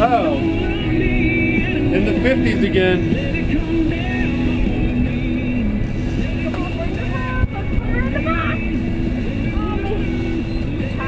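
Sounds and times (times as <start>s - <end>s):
music: 0.0s - 11.0s
outboard motors rumbling: 0.0s - 11.0s
voices: 0.0s - 11.0s
wind: 0.0s - 11.0s.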